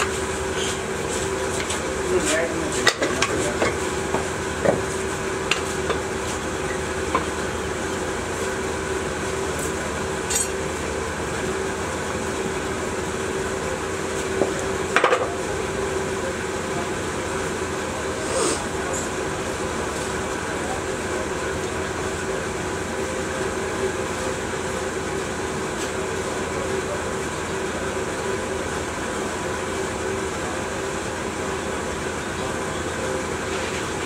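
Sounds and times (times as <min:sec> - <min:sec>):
steady machine hum: 0:00.0 - 0:34.0.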